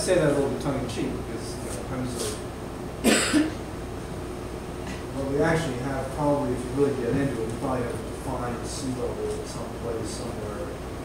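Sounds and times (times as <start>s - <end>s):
man coughing: 3.0s - 3.6s.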